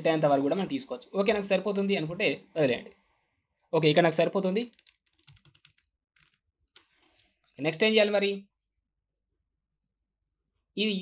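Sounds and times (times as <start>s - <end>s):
keyboard key presses: 4.7s - 7.0s.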